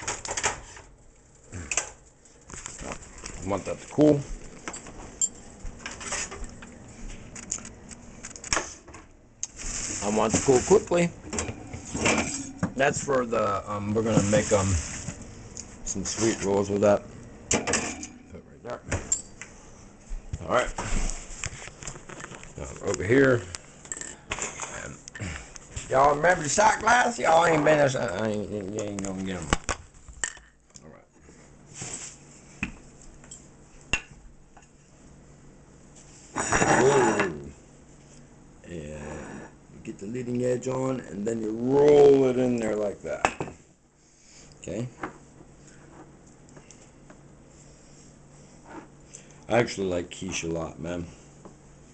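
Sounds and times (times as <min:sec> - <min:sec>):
dough sheet rustling: 0:11.8 - 0:16.8.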